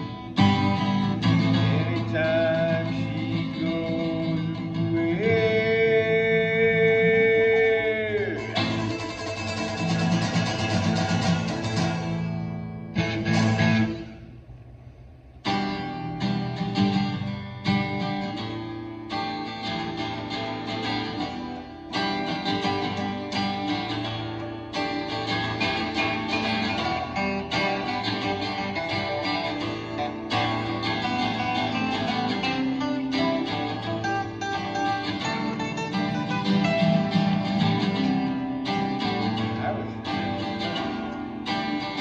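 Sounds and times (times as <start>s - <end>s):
acoustic guitars strumming: 0.0s - 42.0s.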